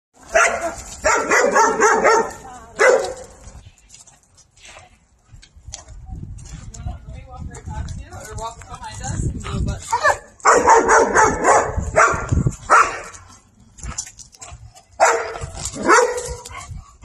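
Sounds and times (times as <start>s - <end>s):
dog barking: 0.3s - 3.3s, 10.0s - 13.1s, 15.0s - 16.4s.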